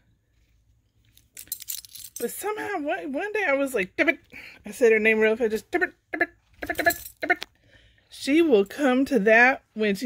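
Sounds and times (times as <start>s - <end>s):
collar tag jingling: 1.2s - 2.4s, 6.6s - 7.4s.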